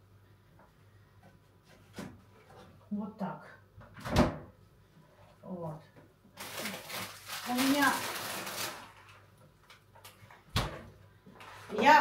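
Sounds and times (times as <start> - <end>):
plastic packets rustling: 6.3 - 10.3.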